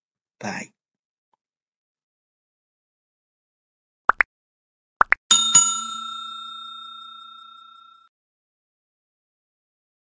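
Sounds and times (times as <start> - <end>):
bell chime: 5.3 - 8.1.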